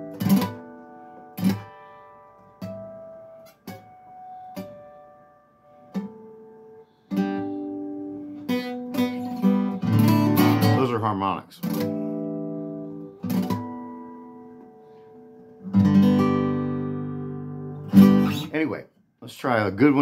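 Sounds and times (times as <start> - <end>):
acoustic guitar harmonics plucked: 0.0 - 18.8.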